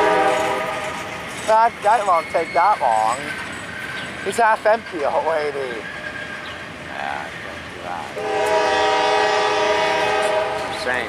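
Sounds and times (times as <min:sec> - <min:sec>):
train wheels on rail: 0:00.0 - 0:11.0.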